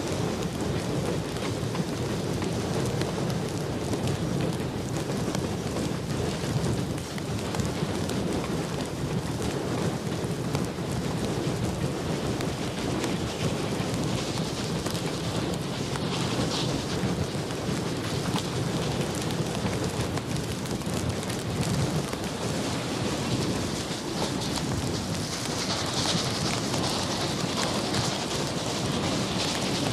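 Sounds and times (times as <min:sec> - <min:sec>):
steam locomotive rumbling roar: 0:00.0 - 0:29.9.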